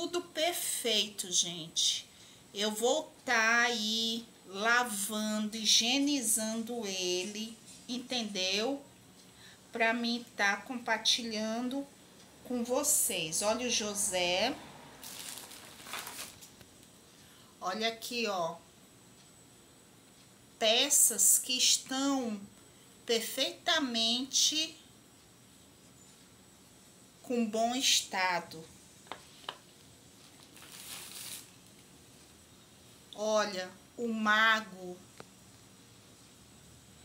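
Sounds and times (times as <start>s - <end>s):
plastic bag rustling: 15.0s - 16.6s, 30.2s - 31.8s.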